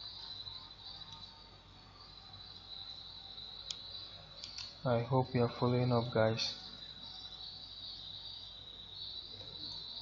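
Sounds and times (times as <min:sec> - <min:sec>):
faint low hum: 0:00.0 - 0:10.0
high-pitched whine: 0:00.0 - 0:10.0.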